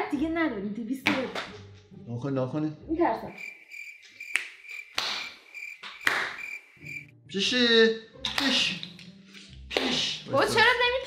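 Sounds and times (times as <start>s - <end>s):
cricket chirping: 3.2s - 7.1s.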